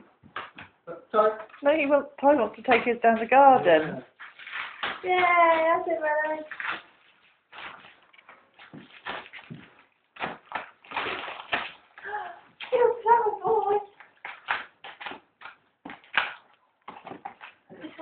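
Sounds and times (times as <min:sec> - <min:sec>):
wrapping paper tearing and rustling: 0:04.2 - 0:12.0.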